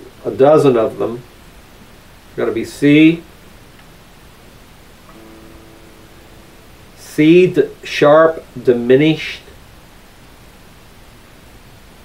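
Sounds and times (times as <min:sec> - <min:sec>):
acoustic guitar chord: 0:05.0 - 0:08.7.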